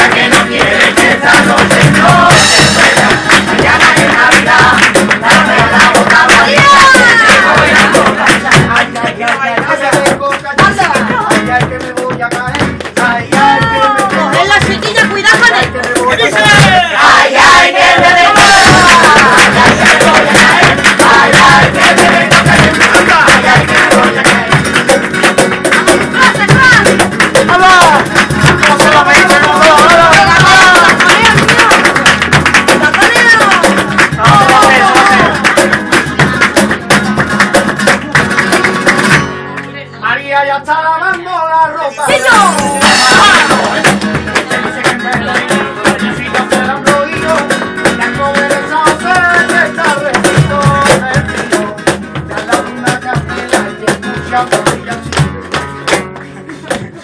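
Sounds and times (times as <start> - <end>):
voices singing: 0.0 - 11.6, 12.6 - 25.0, 25.9 - 32.2, 32.8 - 35.7, 41.4 - 55.1
quick sharp rhythmic beat: 0.0 - 39.6, 41.1 - 57.0
flamenco guitar: 0.0 - 57.0.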